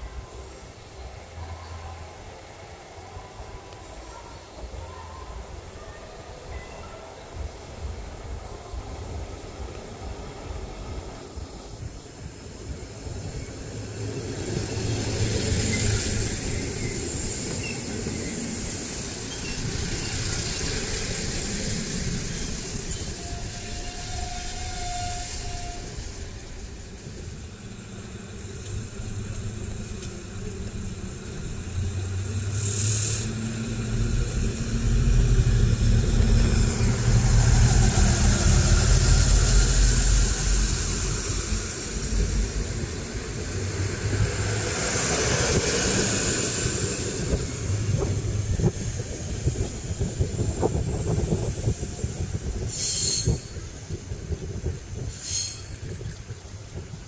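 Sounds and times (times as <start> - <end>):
train wheels clattering on rails: 7.7 - 57.0
wheels squealing: 13.3 - 56.2
diesel engines revving: 26.0 - 52.6
short high hisses: 52.7 - 53.6, 55.1 - 55.8.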